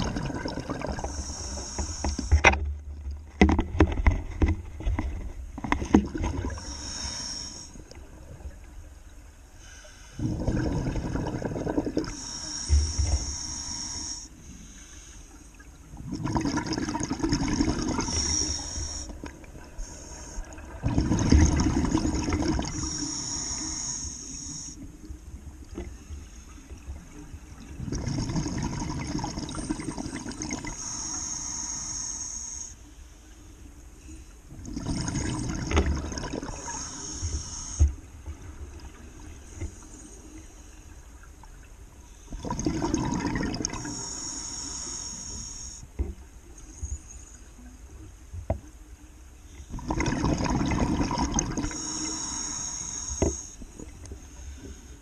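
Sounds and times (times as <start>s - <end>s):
regulator air hiss: 1.0s - 2.4s, 6.6s - 7.8s, 12.1s - 15.5s, 18.0s - 20.5s, 22.7s - 25.0s, 30.7s - 34.2s, 36.6s - 38.0s, 43.8s - 45.9s, 51.6s - 55.0s
bubbles bursting underwater: 10.2s - 12.1s, 20.7s - 22.7s, 34.7s - 36.6s, 42.4s - 43.8s, 49.8s - 51.8s.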